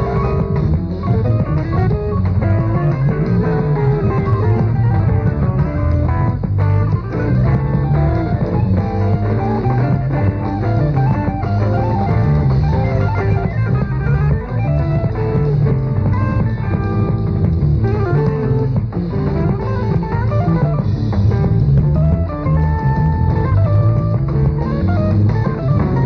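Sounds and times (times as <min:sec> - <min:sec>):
rock band playing live: 0:00.0 - 0:26.0.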